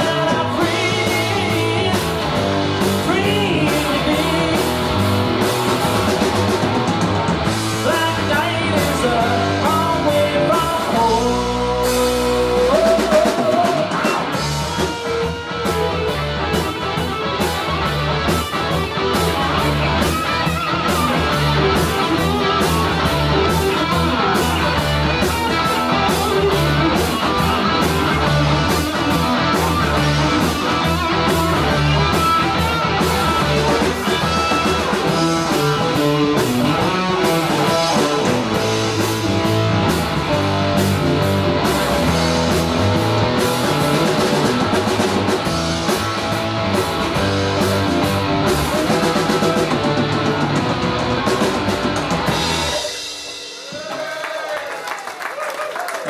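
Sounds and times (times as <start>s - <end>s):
electric guitars: 0.0s - 54.0s
drum kit beat: 0.0s - 54.4s.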